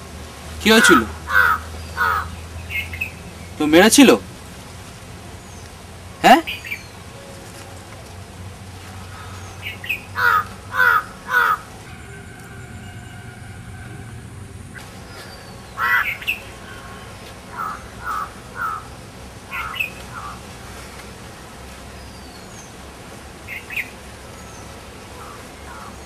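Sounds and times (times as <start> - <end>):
low outdoor background: 0.0 - 26.0
bird calling: 0.6 - 4.2, 5.2 - 8.1, 8.8 - 22.8, 23.4 - 26.0.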